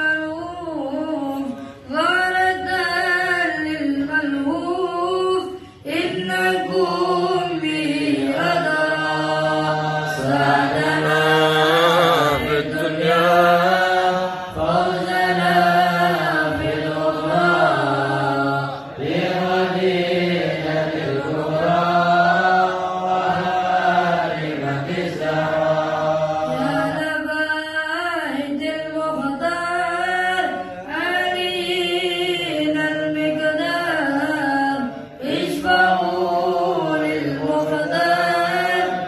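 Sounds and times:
men chanting in unison: 0:07.8 - 0:26.9.

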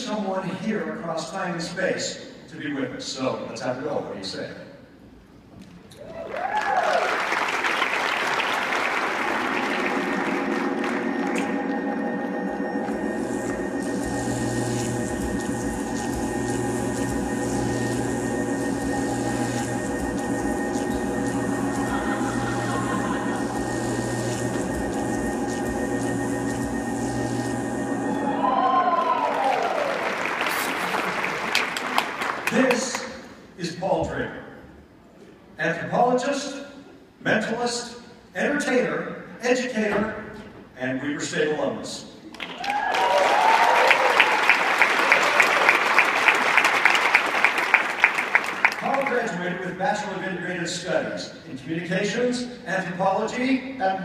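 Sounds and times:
sweeping pitch glides: 0:09.3 - 0:30.7
electronic drone with hum and hiss: 0:09.4 - 0:28.6.

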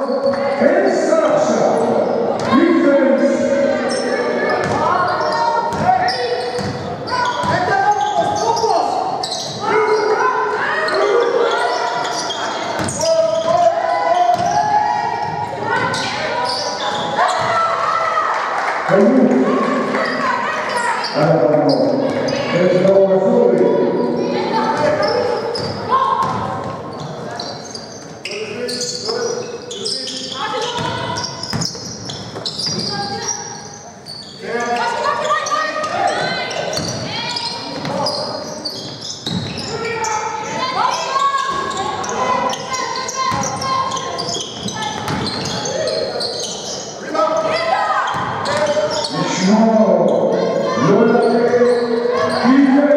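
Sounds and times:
players calling out: 0:00.0 - 0:52.9
basketball bouncing on hardwood: 0:04.6 - 0:04.8, 0:45.0 - 0:45.4.

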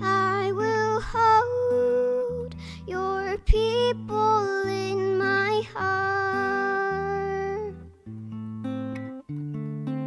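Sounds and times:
girl singing a hymn: 0:00.0 - 0:07.9
acoustic guitar: 0:00.0 - 0:10.0.

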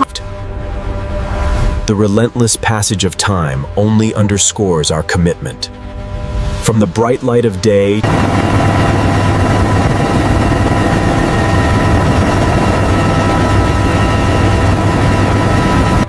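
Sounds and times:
helicopter rotor and engine noise: 0:07.7 - 0:16.0
high whining tones: 0:08.0 - 0:16.0.

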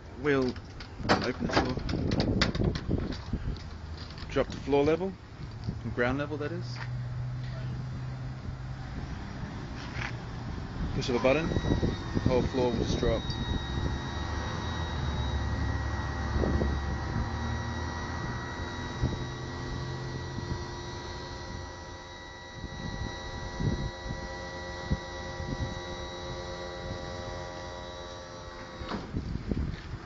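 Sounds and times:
hydraulic lift humming: 0:10.2 - 0:29.4.

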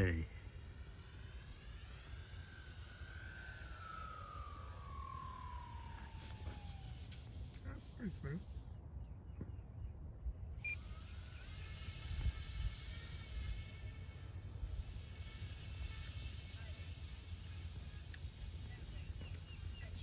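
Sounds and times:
model airplane motor whine: 0:00.0 - 0:08.8, 0:10.4 - 0:20.0
low steady rumble: 0:00.0 - 0:20.0.

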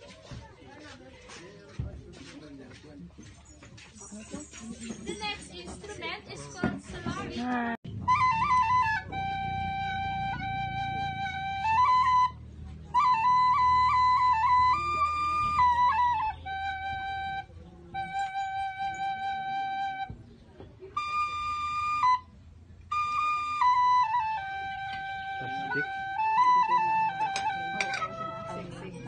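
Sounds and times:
flute playing slow melody: 0:07.9 - 0:20.2, 0:20.8 - 0:28.9.

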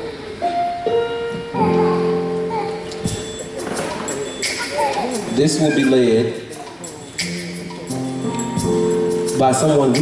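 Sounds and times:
keyboard playing held notes: 0:00.1 - 0:10.0.

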